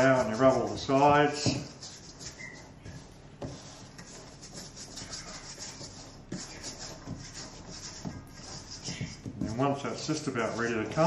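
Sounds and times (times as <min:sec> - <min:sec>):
hands working dough in bowl: 0:00.0 - 0:11.0.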